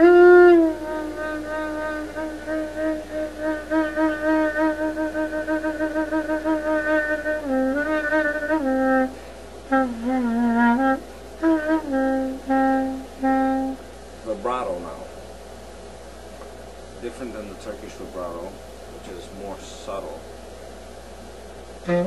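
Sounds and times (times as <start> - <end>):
solo clarinet: 0.0 - 13.8, 21.8 - 22.0.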